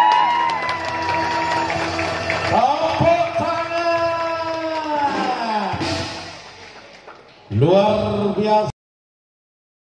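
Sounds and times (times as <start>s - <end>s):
man calling out: 2.5s - 5.8s.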